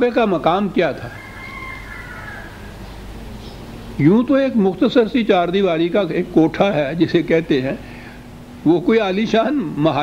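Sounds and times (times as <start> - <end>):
recording hum and hiss: 0.0 - 10.0.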